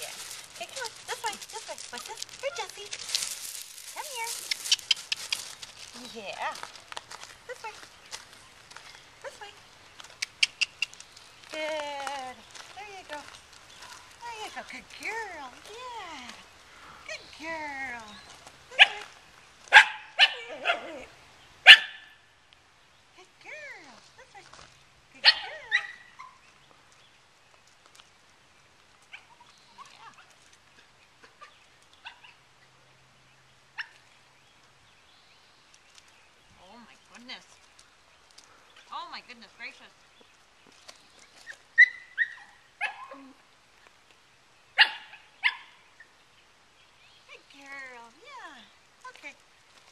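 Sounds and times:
footsteps on gravel: 0:00.0 - 0:16.6, 0:17.2 - 0:19.8
puppy barking: 0:18.8 - 0:19.0, 0:19.7 - 0:20.9, 0:21.6 - 0:22.1, 0:41.8 - 0:43.2, 0:44.8 - 0:45.7
puppy yipping: 0:21.7 - 0:22.1, 0:25.2 - 0:26.4, 0:41.4 - 0:43.2, 0:44.8 - 0:45.7.

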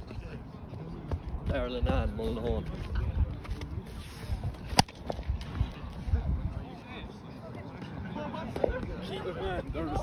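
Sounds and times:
wind rumbling on microphone: 0:01.2 - 0:07.0
stick striking ball crack: 0:04.7 - 0:05.2.

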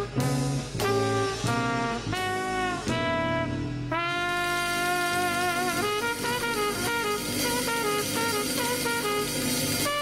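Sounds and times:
bass: 0:00.0 - 0:10.0
brass horn quick run: 0:00.0 - 0:10.0
drums: 0:00.0 - 0:10.0.

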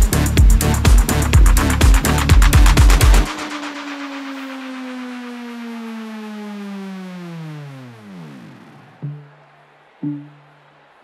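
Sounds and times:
synth tone gliding down in pitch: 0:03.2 - 0:10.7.

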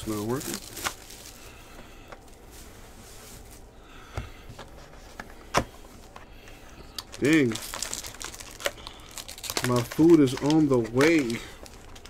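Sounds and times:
foil wrappers crinkling: 0:00.0 - 0:04.0, 0:06.4 - 0:12.0.

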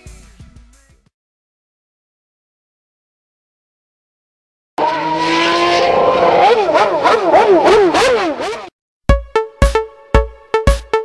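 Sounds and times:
car engine revving: 0:04.8 - 0:08.7.

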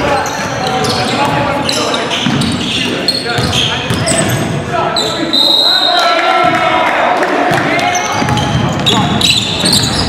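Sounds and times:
sneakers squeaking on floor: 0:00.0 - 0:05.9, 0:07.8 - 0:10.0.

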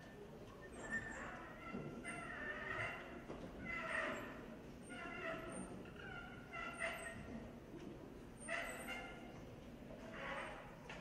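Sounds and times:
murmur of hall: 0:00.0 - 0:11.0.

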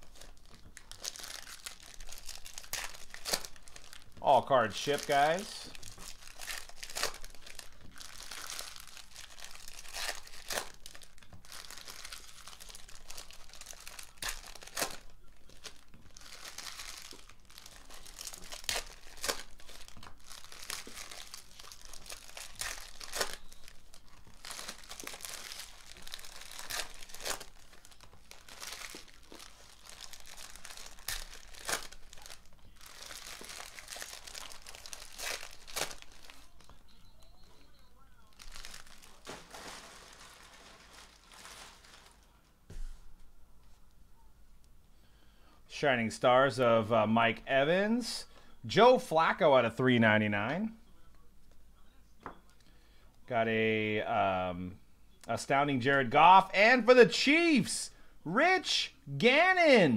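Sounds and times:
foil wrappers tearing and crinkling: 0:00.0 - 0:36.7, 0:38.2 - 0:42.3.

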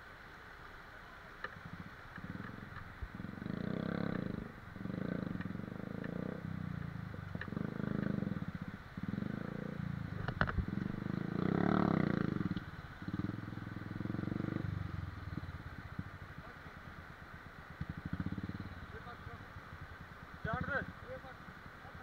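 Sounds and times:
motorcycle engine revving: 0:01.5 - 0:22.0.

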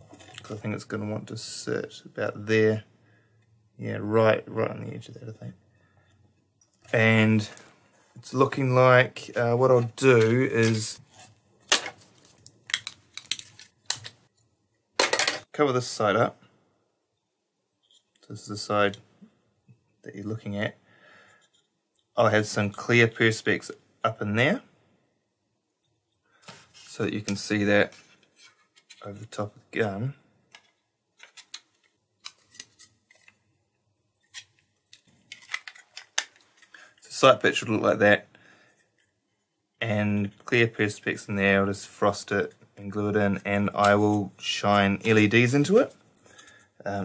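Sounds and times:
plastic parts clicking and tapping: 0:11.7 - 0:14.2, 0:30.5 - 0:33.4, 0:34.2 - 0:36.8
hard plastic parts clicking: 0:34.3 - 0:36.7.

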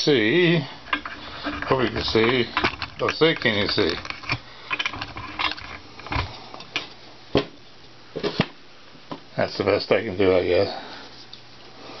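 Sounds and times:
light handling clicks and knocks: 0:00.9 - 0:07.5.

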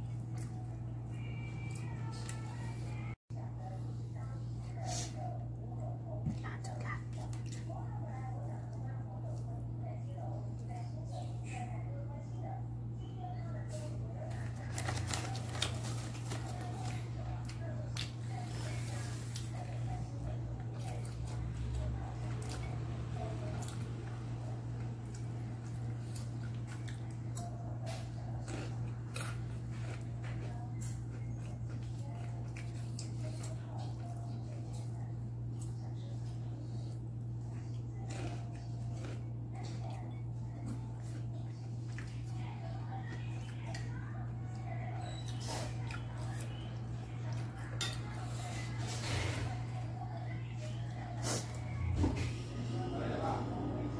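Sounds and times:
chewing: 0:00.0 - 0:03.1, 0:04.8 - 0:11.5, 0:13.8 - 0:51.8
steady low hum: 0:00.0 - 0:53.9.

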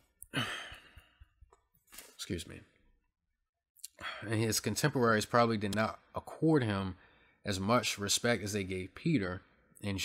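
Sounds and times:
man sighing: 0:00.3 - 0:01.2.

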